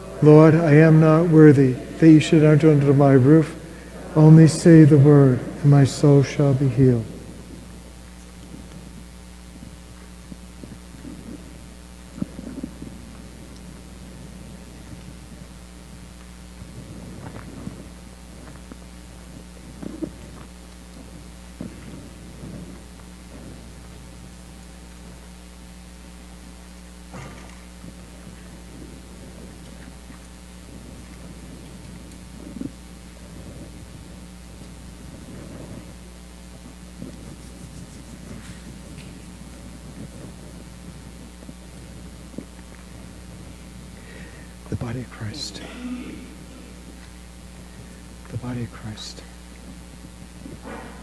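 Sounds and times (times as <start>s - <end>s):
low electrical hum: 0.0s - 51.0s.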